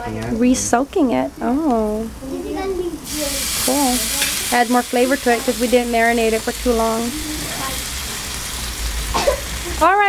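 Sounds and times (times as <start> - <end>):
chicken sizzling on a grill: 1.9 - 10.0.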